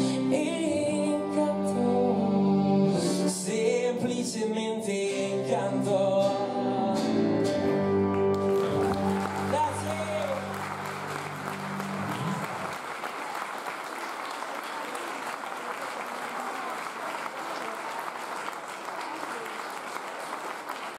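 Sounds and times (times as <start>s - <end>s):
band chord on guitars and keyboard: 5.2s - 12.7s
audience applauding: 8.1s - 20.9s.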